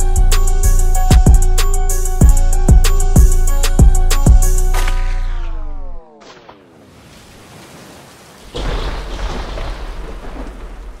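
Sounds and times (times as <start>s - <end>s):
thunder rumble: 8.4s - 11.0s.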